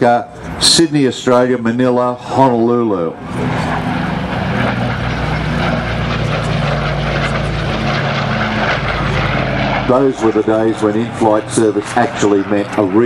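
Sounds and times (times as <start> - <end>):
propeller airplane droning past: 0.0 - 13.0.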